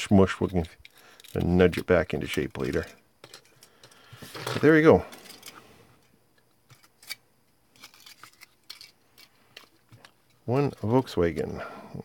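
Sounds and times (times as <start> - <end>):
crinkling foil handled in fingers: 6.7 - 11.4.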